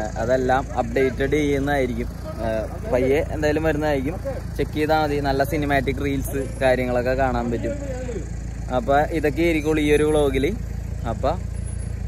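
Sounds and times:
man talking: 0:00.0 - 0:11.5.

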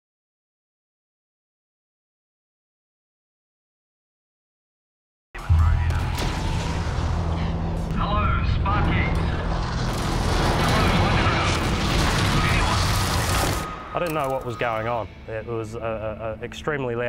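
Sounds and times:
explosion deep rumbling roar: 0:05.6 - 0:13.8
person's voice: 0:14.0 - 0:17.0.

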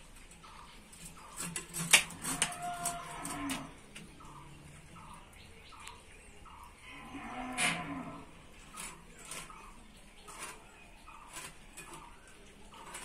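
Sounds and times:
cow mooing: 0:02.3 - 0:03.8, 0:06.8 - 0:08.4.

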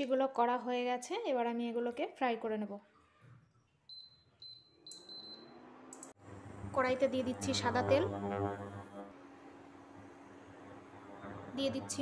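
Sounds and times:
sharp click: 0:05.9 - 0:06.2.

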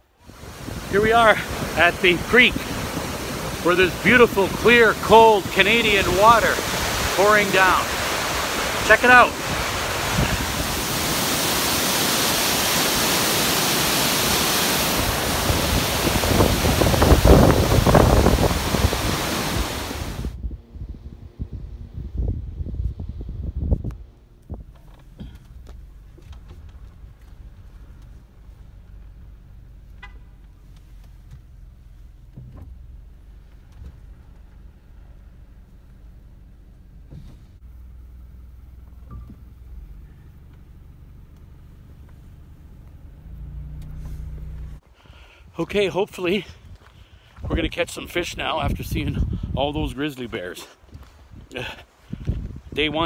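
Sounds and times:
waterfall rushing: 0:00.2 - 0:20.3.

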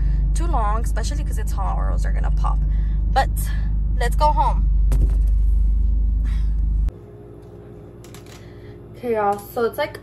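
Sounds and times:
car engine running: 0:00.0 - 0:06.9.

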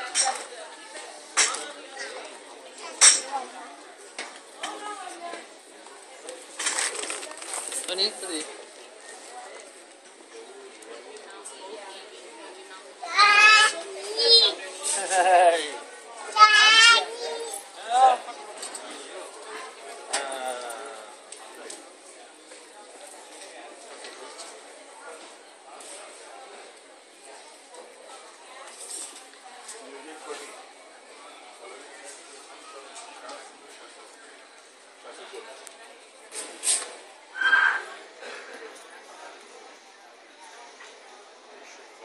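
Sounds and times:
crowd murmur: 0:00.0 - 0:42.0
short voiced call: 0:37.3 - 0:38.0
high-pitched squealing cry: 0:37.4 - 0:38.0.

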